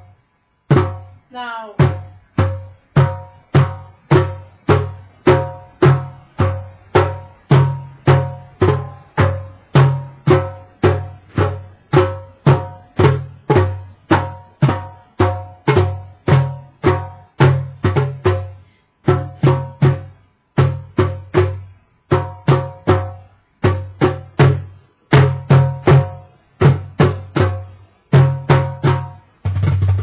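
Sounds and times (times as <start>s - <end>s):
hand drums struck: 0.7s - 1.2s, 1.8s - 30.0s.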